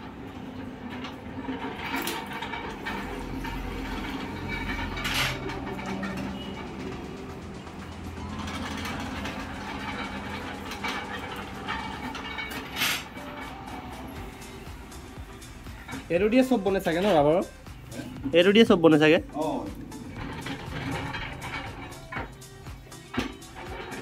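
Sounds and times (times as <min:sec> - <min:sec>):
metal trays clanking and scraping: 0:00.0 - 0:24.0.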